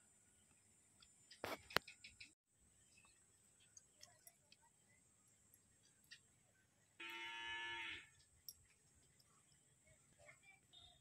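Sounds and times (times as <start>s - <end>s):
farm animal call: 7.0s - 8.2s.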